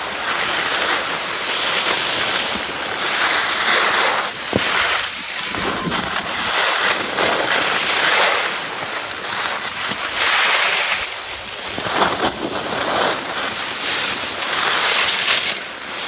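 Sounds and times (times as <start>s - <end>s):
skis scraping over snow: 0.0s - 16.0s
wind on microphone: 2.0s - 14.6s.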